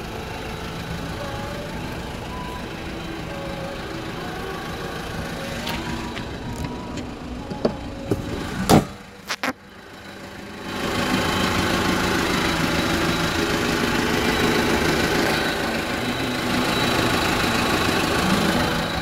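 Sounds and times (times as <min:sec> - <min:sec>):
truck engine idling: 0:00.0 - 0:19.0.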